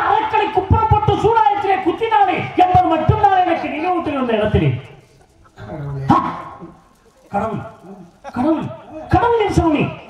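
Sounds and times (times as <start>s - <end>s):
man calling through a microphone: 0.0s - 4.9s, 8.4s - 10.0s.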